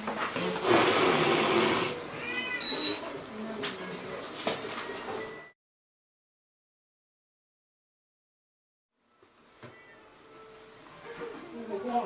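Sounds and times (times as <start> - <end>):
cat hissing: 0.6 - 2.0.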